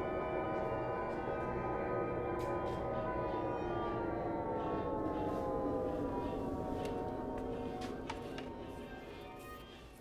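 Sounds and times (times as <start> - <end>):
descending drone: 0.0 - 10.0.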